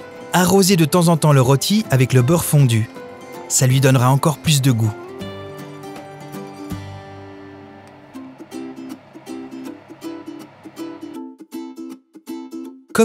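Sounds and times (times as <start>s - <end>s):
light tune on plucked strings: 1.4s - 11.4s.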